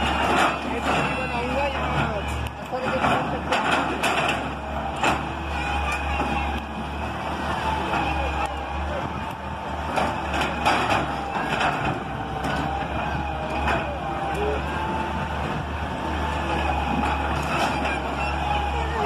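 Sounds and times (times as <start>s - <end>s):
excavator diesel engine humming: 0.0s - 19.0s.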